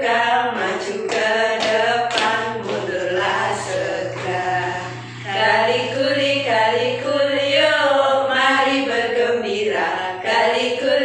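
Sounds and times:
steady low hum: 0.0 - 11.0
voices singing children's song: 0.0 - 11.0.

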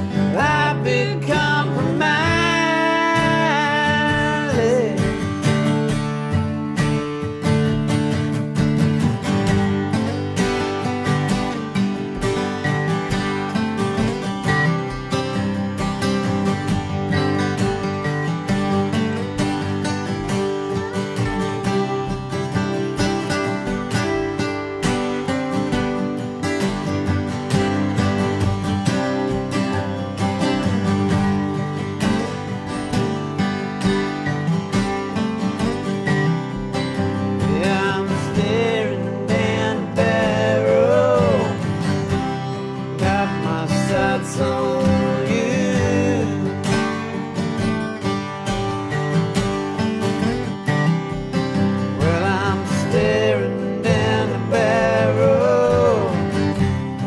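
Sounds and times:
acoustic guitar picking lead line: 0.0 - 57.0
acoustic guitar strumming chords: 0.0 - 57.0.

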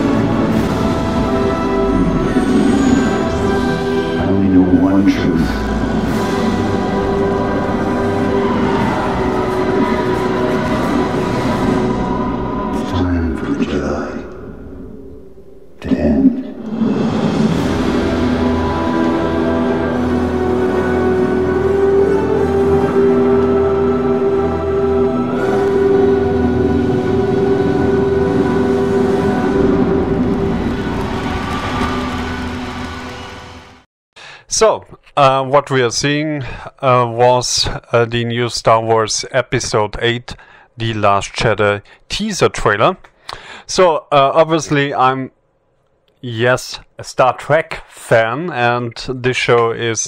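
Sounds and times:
deep rumble: 0.0 - 33.8
sustained orchestral music: 0.0 - 33.8
rumbling sound effects: 7.7 - 19.2.

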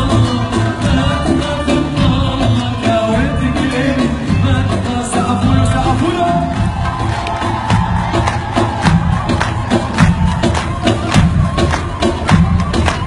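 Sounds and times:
heavy bass: 0.0 - 13.0
live pop band music: 0.0 - 13.0
steady drumbeat: 0.0 - 13.0
crowd cheering: 5.7 - 13.0.

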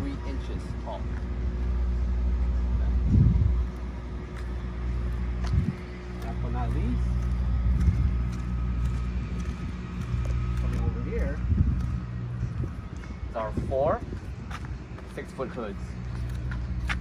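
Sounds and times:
low mechanical drone: 0.0 - 17.0
low bumps: 0.7 - 17.0.

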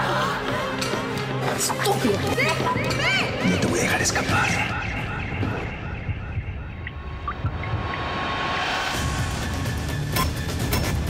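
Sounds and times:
low rumbling trailer drone: 4.6 - 10.1.

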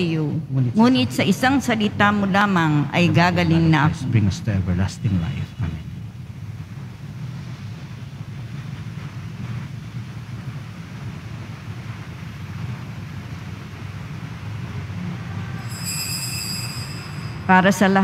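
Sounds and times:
low rumble: 0.0 - 18.0
faint high ringing tone: 15.4 - 18.0.

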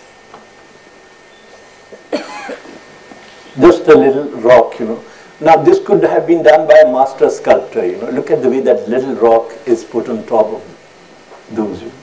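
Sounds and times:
man coughing: 2.1 - 2.9.

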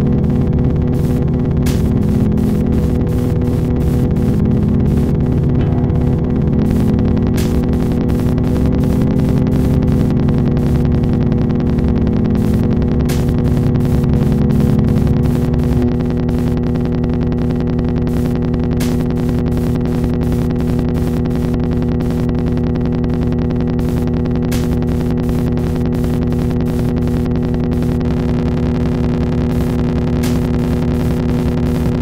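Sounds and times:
electric bass drone pulsing: 0.0 - 32.0.

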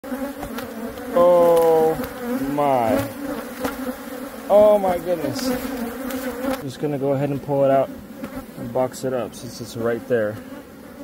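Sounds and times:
bee flying close humming: 0.0 - 11.0
honeybees buzzing: 0.0 - 11.0.

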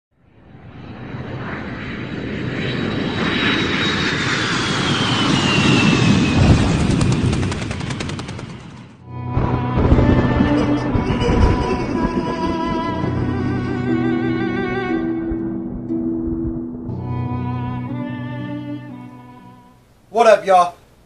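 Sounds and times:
rumbling whoosh: 5.0 - 14.3
music intro: 9.0 - 20.0.

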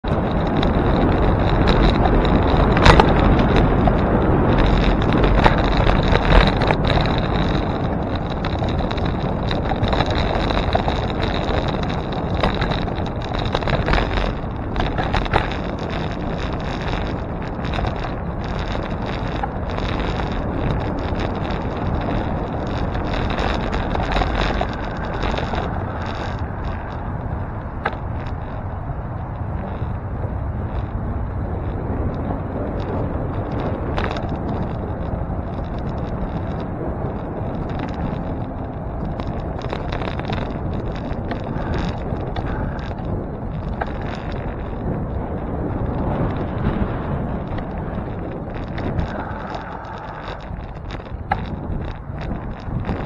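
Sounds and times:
bike knocks and rattles: 0.0 - 53.0
tyre noise on road: 0.0 - 53.0
wind rushing over microphone: 0.0 - 53.0.

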